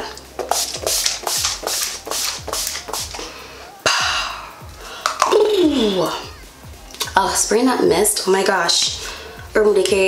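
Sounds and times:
music with steady beat: 0.0 - 10.0
spray bottle spritzing: 0.4 - 3.3.

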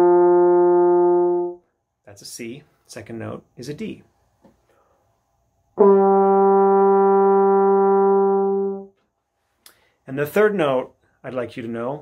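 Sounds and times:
french horn steady note: 0.0 - 1.6, 5.8 - 9.0.

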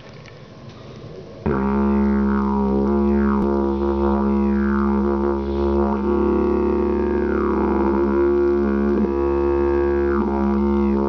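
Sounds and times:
didgeridoo drone: 1.2 - 11.0.

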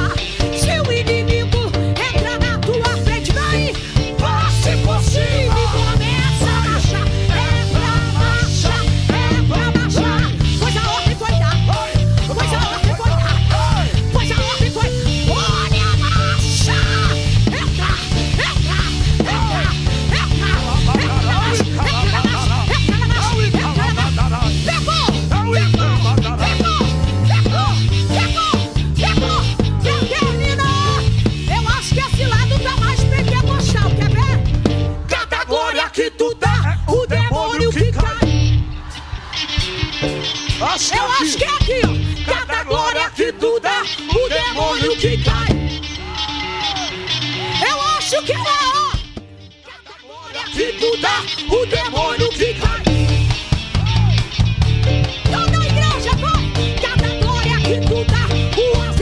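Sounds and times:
drum kit: 0.0 - 59.0
live gospel band music: 0.0 - 59.0
low bass line: 2.7 - 35.1, 52.2 - 59.0
high lead instrument bending notes: 3.5 - 35.1.

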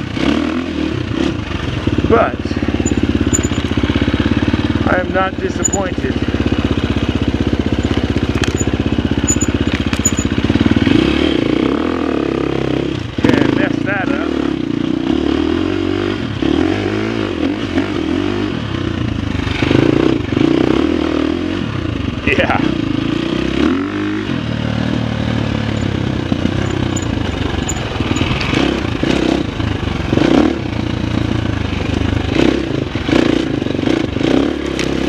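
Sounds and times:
dirt bike engine revving: 0.0 - 35.0.

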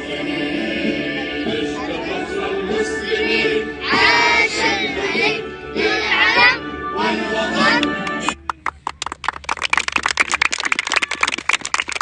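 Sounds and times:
sung anthem: 0.0 - 8.4
children clapping: 7.8 - 12.0.

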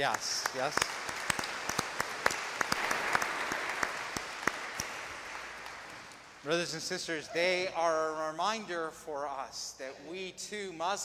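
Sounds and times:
congregation applauding: 0.0 - 6.8.

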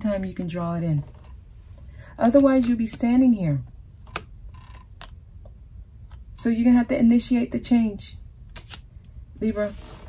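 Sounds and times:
cards clicking: 8.5 - 8.9.

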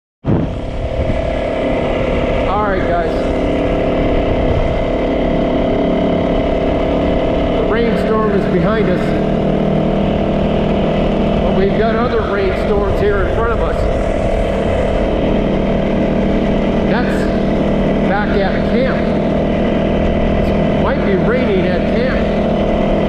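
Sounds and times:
dirt bike engine running: 0.2 - 23.0.

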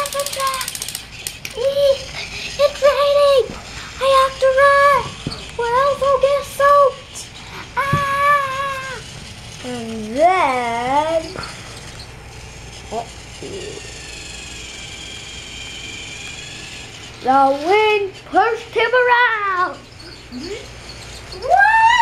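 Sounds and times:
child making sing-song sounds: 0.0 - 0.8, 1.5 - 9.0.

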